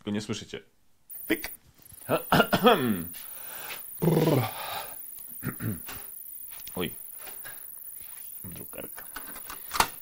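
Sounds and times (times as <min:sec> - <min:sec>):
man making wordless sounds: 0:01.2 - 0:03.2, 0:04.0 - 0:04.8.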